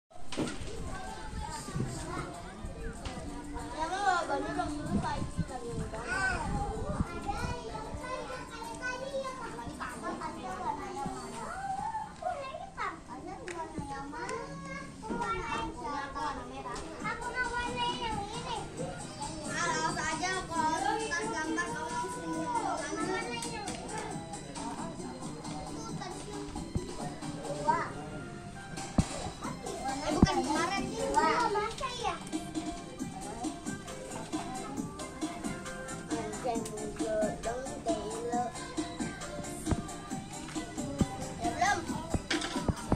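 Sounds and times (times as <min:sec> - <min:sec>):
children talking and calling out: 0:00.2 - 0:42.9.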